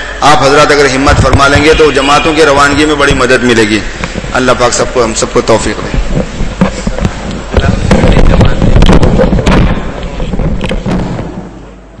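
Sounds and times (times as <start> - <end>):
dense crackling and knocking: 4.0 - 11.5.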